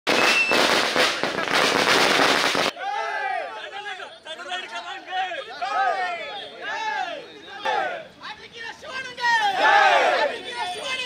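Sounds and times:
firecrackers crackling: 0:00.1 - 0:02.8
men talking and shouting: 0:02.7 - 0:11.0.

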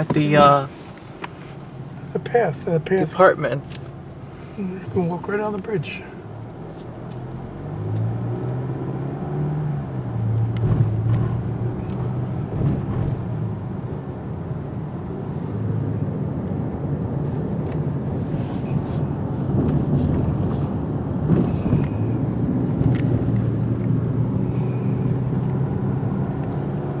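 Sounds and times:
car engine and road noise: 0:00.0 - 0:27.0.

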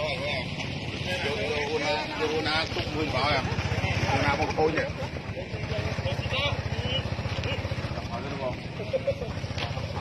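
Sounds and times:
low engine rumble: 0:00.0 - 0:10.0
voices talking: 0:00.0 - 0:10.0.

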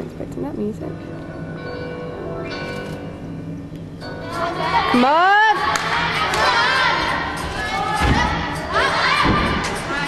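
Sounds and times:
spectators shouting and cheering: 0:04.2 - 0:10.0.

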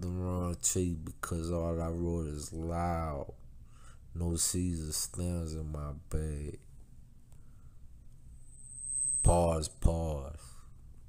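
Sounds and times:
faint low hum and hiss: 0:00.0 - 0:11.0
high-pitched steady whine: 0:07.3 - 0:11.0.

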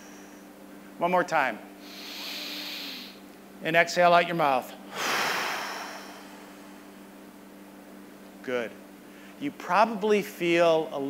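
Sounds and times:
deep breath exhaled: 0:01.8 - 0:03.2, 0:04.9 - 0:07.0.

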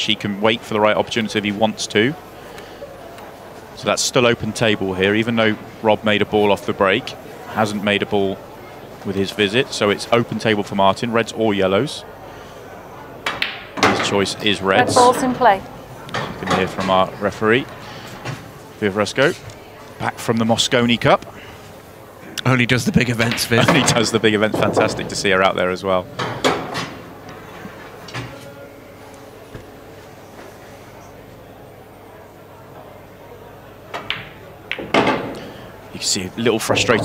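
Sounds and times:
pool balls clicking: 0:13.2 - 0:17.1, 0:23.1 - 0:28.4, 0:33.9 - 0:37.0
short knocks: 0:36.6 - 0:37.0.

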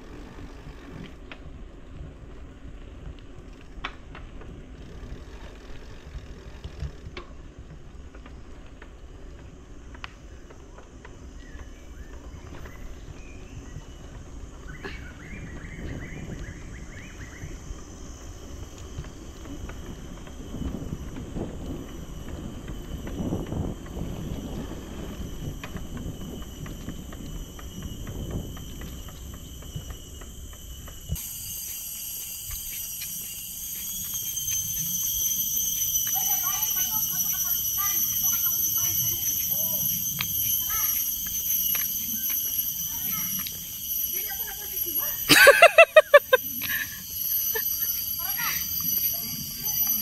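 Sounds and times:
bike clicks and rattles: 0:00.0 - 0:14.6
bicycle rolling on asphalt: 0:00.0 - 0:50.0
high-pitched insect drone: 0:04.4 - 0:50.0
wind rumble on microphone: 0:10.3 - 0:45.1.

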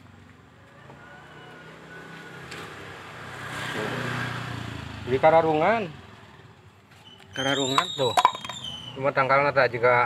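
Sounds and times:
vehicle engine passing: 0:00.9 - 0:06.5.

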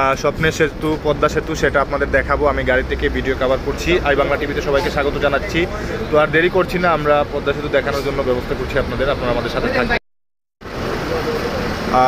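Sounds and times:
traffic and bus engine rumble: 0:00.0 - 0:10.0, 0:10.6 - 0:12.0.

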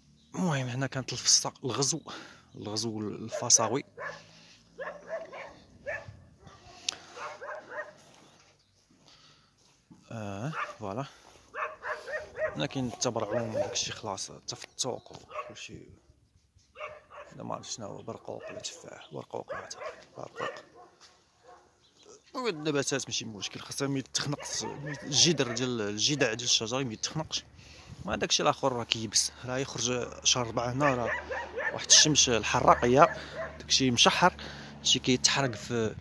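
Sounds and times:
dogs barking: 0:03.1 - 0:08.2, 0:10.4 - 0:14.2, 0:15.2 - 0:15.7, 0:16.7 - 0:26.7, 0:29.2 - 0:35.7.

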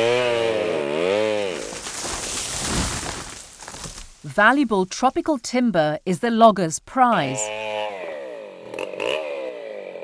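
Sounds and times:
chainsaw engine revving: 0:00.0 - 0:03.4, 0:07.3 - 0:10.0.

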